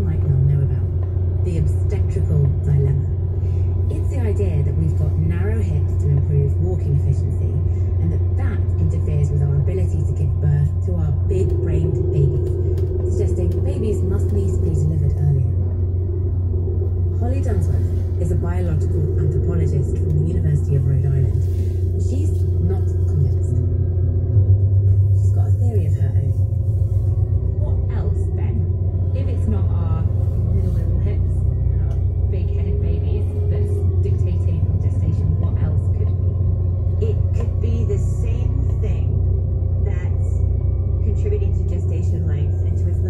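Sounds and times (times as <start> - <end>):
car engine and road noise: 0.0 - 43.0
person talking: 3.9 - 15.6, 17.2 - 23.8, 25.2 - 26.4, 27.5 - 36.4.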